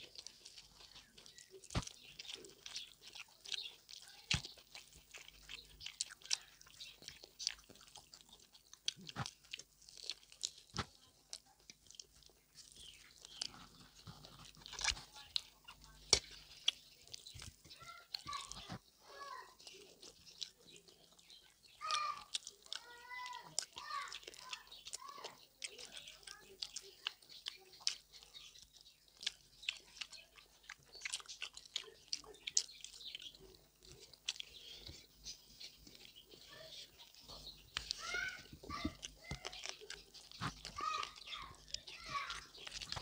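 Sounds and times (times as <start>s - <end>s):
sharp clicks and crunches: 0.0s - 18.8s, 19.5s - 43.0s
wet chewing: 0.0s - 43.0s.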